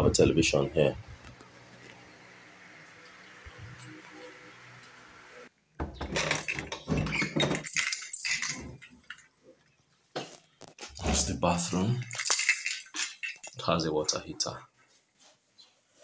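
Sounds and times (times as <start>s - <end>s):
keys jangling in door lock: 6.1s - 9.2s, 11.9s - 13.6s.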